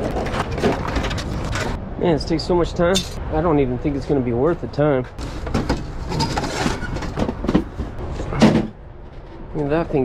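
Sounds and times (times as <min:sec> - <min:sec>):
cardboard scraping and rustling: 0:00.0 - 0:01.8, 0:05.2 - 0:09.2
small knocks and clunks: 0:05.2 - 0:09.4.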